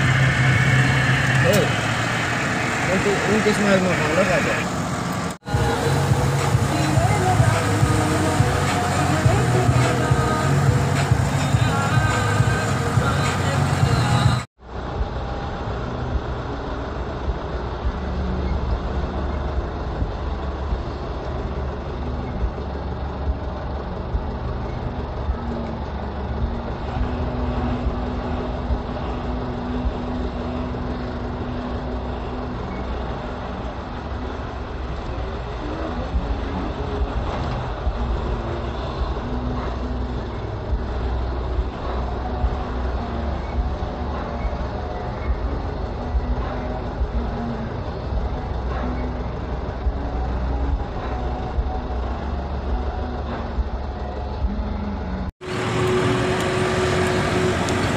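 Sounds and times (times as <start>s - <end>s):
steady low drone: 0.0s - 57.9s
vehicle engine and tyre rumble: 0.0s - 57.9s.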